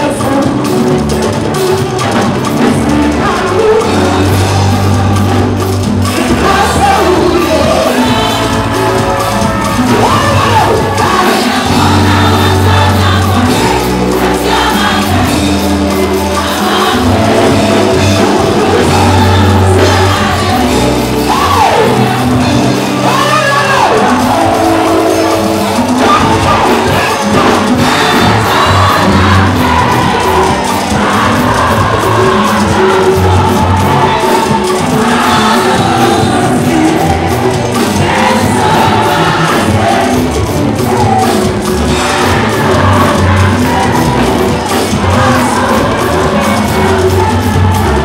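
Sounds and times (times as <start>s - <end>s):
congregation singing along: 0.0s - 48.0s
gospel band playing: 0.0s - 48.0s
lead singer on microphone: 0.0s - 48.0s
crowd cheering: 1.2s - 48.0s.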